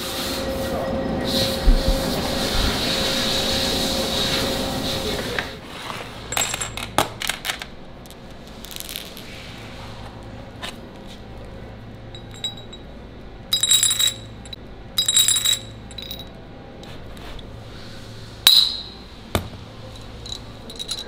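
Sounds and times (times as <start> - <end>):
steady low hum: 0.0 - 21.0
metal bearing balls clinking: 6.3 - 9.3, 12.1 - 16.4, 18.4 - 21.0.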